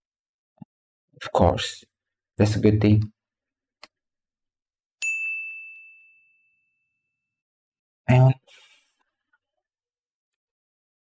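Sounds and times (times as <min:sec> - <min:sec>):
bell-like ding: 0:05.0 - 0:07.0.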